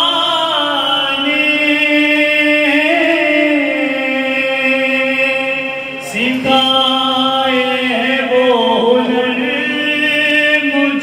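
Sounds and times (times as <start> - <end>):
man chanting: 0.0 - 11.0.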